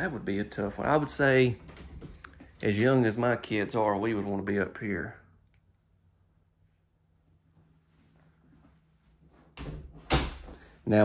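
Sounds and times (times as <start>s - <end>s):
closet door banging shut: 9.6s - 10.6s.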